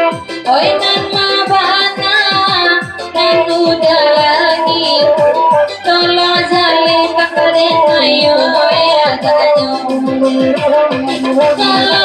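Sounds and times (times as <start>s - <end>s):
drum beat: 0.0s - 12.0s
keyboard backing: 0.0s - 12.0s
woman singing into microphone: 0.0s - 12.0s.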